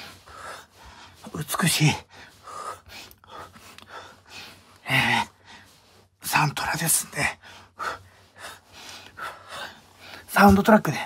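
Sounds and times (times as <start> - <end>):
man breathing hard: 2.0 - 6.0.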